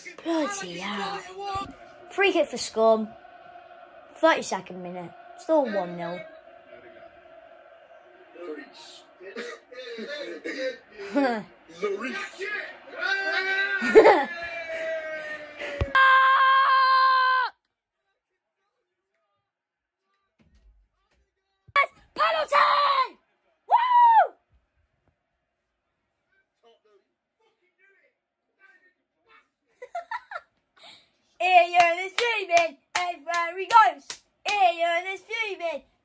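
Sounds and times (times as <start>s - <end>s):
boy screaming: 15.7s - 17.5s, 22.2s - 24.3s
boy wailing: 15.7s - 17.5s
hands clapping: 31.6s - 34.8s.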